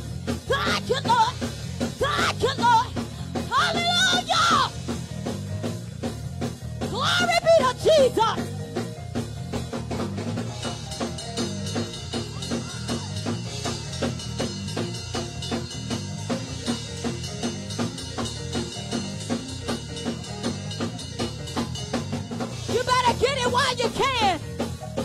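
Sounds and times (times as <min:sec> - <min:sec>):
drum kit playing fast beat: 0:00.0 - 0:25.0
low bass notes: 0:00.0 - 0:25.0.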